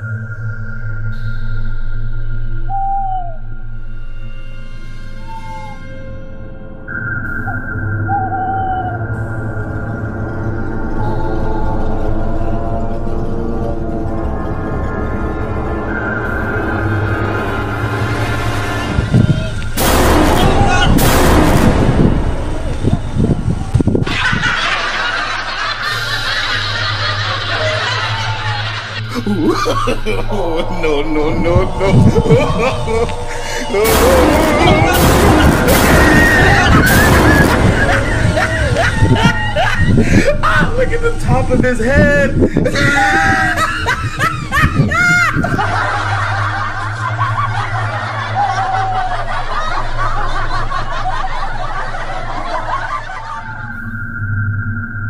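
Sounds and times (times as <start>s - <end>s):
people yelling in fright: 10.9s - 12.7s, 20.2s - 21.0s, 27.5s - 40.8s, 42.6s - 46.7s, 48.0s - 49.9s
loud booming hits: 18.3s - 24.5s, 31.5s - 40.8s
snickering and chuckling: 24.0s - 40.8s, 42.3s - 53.7s.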